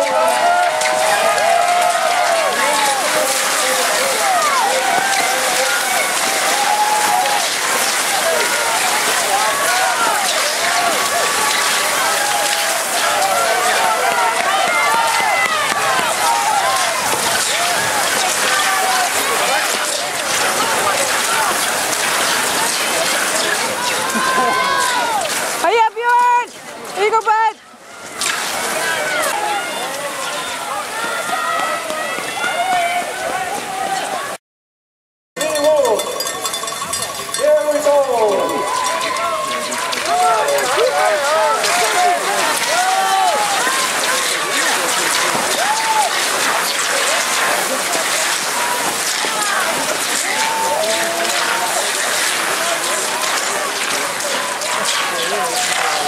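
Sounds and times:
skis scraping on snow: 0:00.0 - 0:27.2, 0:37.6 - 0:56.0
spectators cheering: 0:00.0 - 0:34.4, 0:35.4 - 0:56.0.

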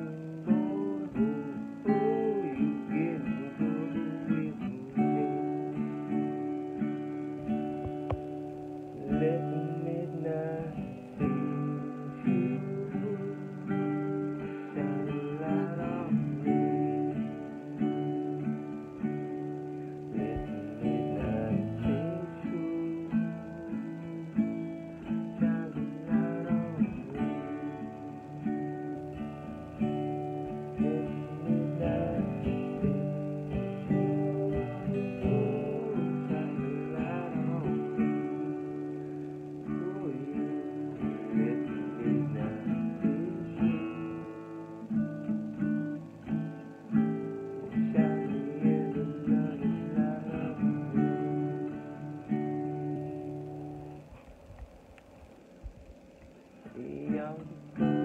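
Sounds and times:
man singing: 0:00.0 - 0:06.4, 0:08.6 - 0:45.1, 0:47.6 - 0:53.0, 0:56.6 - 0:58.0
acoustic guitar strumming: 0:00.0 - 0:58.0.

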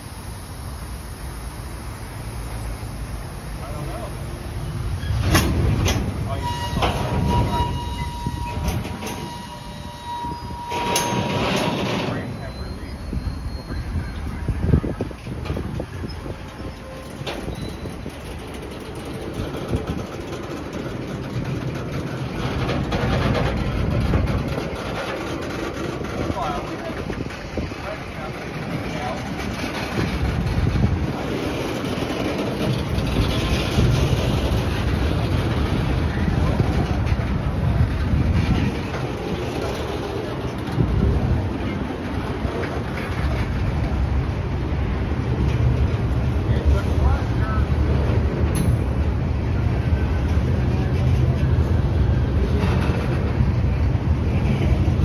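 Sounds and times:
freight cars rolling on rails: 0:00.0 - 0:55.0
railcar clanks: 0:00.0 - 0:55.0.

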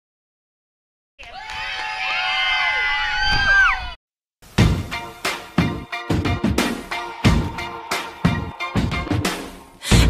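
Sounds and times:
children cheering and shouting: 0:01.2 - 0:04.0.

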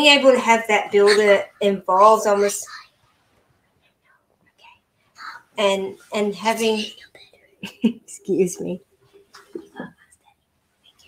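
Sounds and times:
faint whisper: 0:02.4 - 0:03.0, 0:03.8 - 0:07.6.

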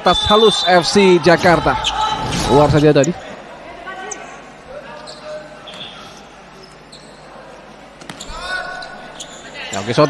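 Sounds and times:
ball played on indoor court: 0:00.0 - 0:03.4, 0:04.0 - 0:09.9
distant voices in a hall: 0:00.0 - 0:10.0
sneakers squeaking: 0:04.0 - 0:07.4, 0:08.0 - 0:09.9.

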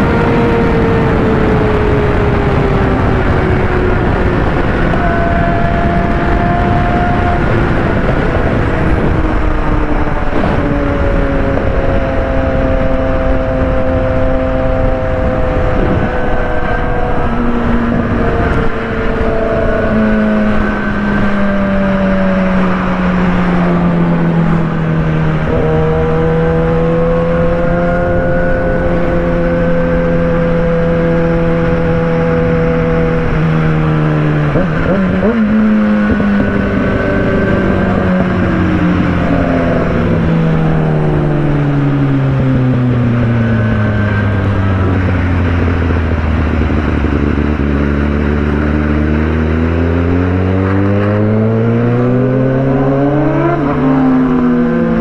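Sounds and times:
motorcycle engine revving: 0:00.0 - 0:55.0
wind rush: 0:00.0 - 0:55.0.

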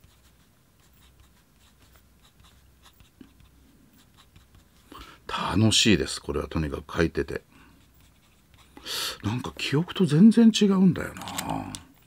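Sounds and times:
fountain pen scratching on paper: 0:00.0 - 0:04.9, 0:07.8 - 0:08.8.

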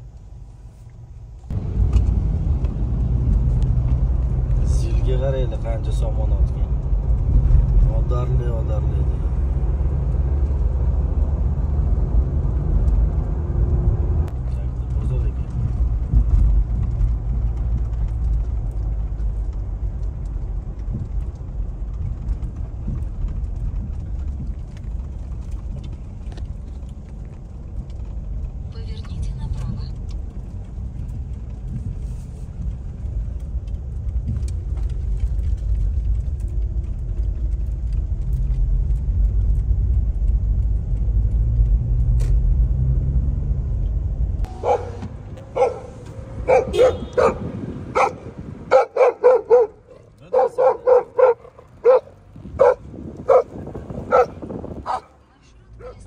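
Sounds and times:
car cabin road rumble: 0:00.0 - 0:56.0.

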